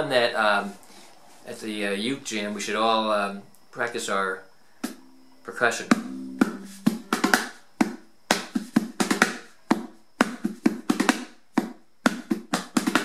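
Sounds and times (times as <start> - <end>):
ukulele taps and muted strums: 5.9 - 7.5.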